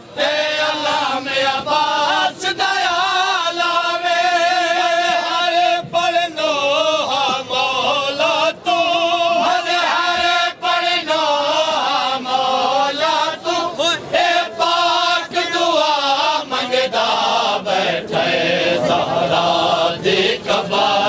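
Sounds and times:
men chanting a lament in unison: 0.0s - 21.0s.

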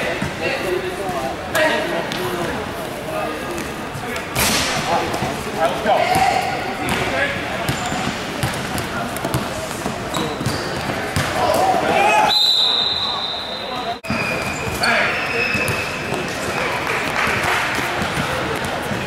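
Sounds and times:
players' voices echoing: 0.0s - 19.0s
basketball bouncing on gym floor: 6.0s - 7.1s, 7.7s - 11.4s.

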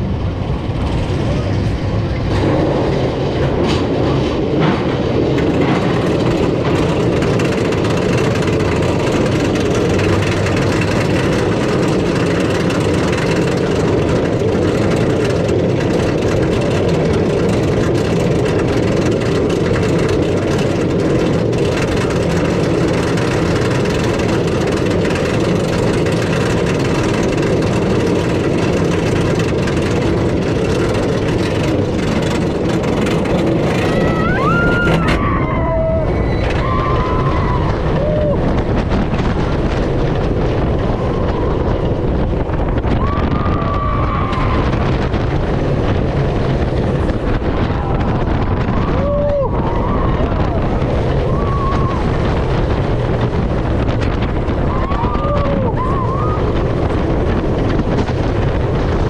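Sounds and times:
roller coaster lift rattle: 0.0s - 59.0s.

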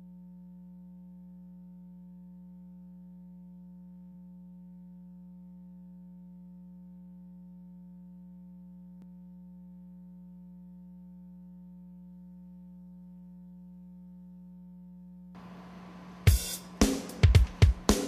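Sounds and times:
low electrical hum: 0.0s - 17.9s.

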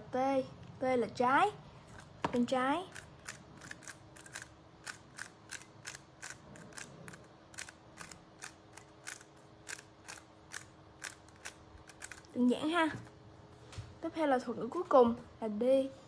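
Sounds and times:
puzzle cube clicking: 2.9s - 12.3s.

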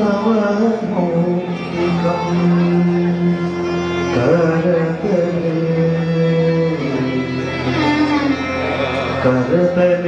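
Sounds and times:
violin held melodic note: 1.3s - 9.6s.

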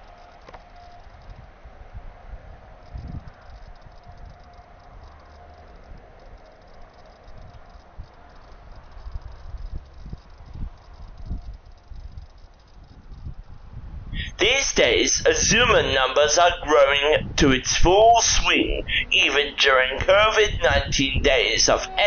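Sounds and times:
distant train hum: 0.0s - 22.0s
wind buffeting microphone: 1.1s - 22.0s.

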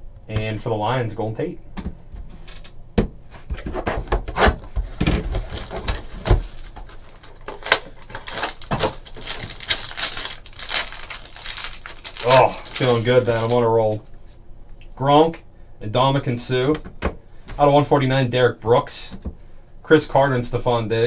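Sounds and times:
plastic and foil crinkling and tearing: 5.2s - 14.0s.

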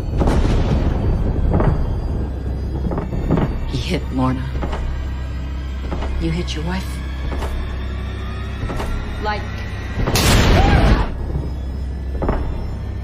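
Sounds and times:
tense film score: 0.0s - 13.0s.

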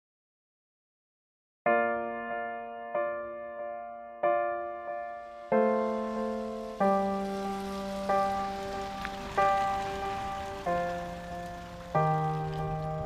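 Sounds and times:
slow piano chords: 1.7s - 13.0s
rain hiss: 5.1s - 13.0s.

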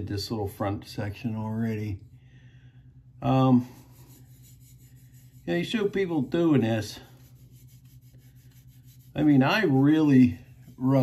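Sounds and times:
low steady hum: 0.0s - 11.0s
fingertips rubbing oiled wood: 3.5s - 11.0s.

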